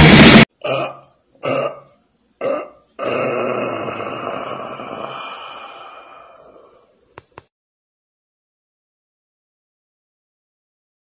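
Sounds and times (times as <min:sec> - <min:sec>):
loud heavy metal music: 0:00.0 - 0:00.5
long belch: 0:00.6 - 0:05.5.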